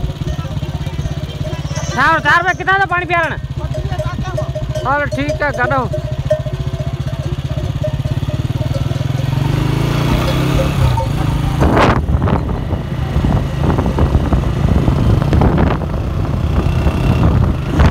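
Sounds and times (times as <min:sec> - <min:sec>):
motorcycle engine running: 0:00.0 - 0:17.9
wind buffeting microphone: 0:00.0 - 0:17.9.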